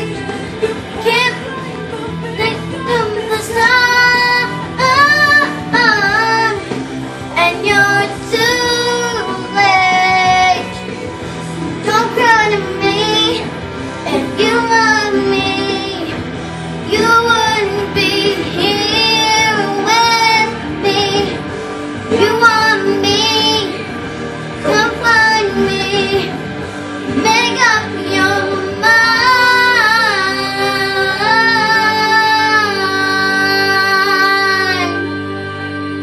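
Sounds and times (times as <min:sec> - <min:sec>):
girl singing: 0:00.0 - 0:06.8, 0:07.4 - 0:10.9, 0:11.8 - 0:21.5, 0:22.1 - 0:23.9, 0:24.6 - 0:26.4, 0:27.1 - 0:36.0
music accompaniment: 0:00.0 - 0:36.0.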